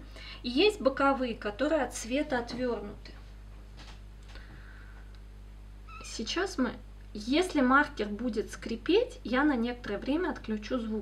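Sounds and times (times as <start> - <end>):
steady low hum: 0.0 - 11.0
marker squeaking on paper: 5.9 - 6.2.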